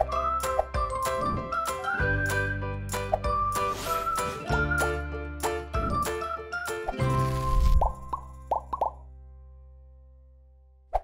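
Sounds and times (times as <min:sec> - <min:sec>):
rising pop sound effects: 0:00.0 - 0:09.0.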